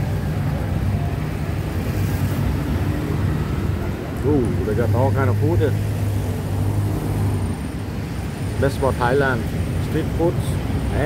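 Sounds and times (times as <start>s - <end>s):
road and traffic noise: 0.0s - 11.0s
vehicle engine drone: 0.0s - 11.0s.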